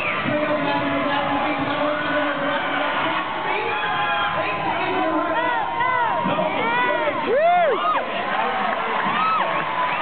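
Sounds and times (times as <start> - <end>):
crowd cheering and shouting: 0.0 - 10.0
high whoops: 5.5 - 8.0.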